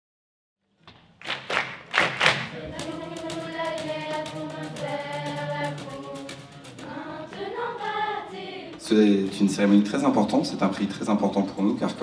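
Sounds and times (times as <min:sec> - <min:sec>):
children's choir holding a chord: 0:02.5 - 0:08.8.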